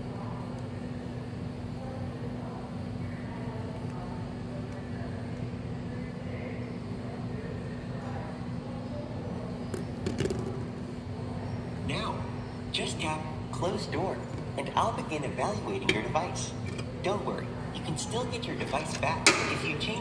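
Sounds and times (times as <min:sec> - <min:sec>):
electrical hum: 0:00.0 - 0:20.0
faint voices: 0:00.0 - 0:20.0.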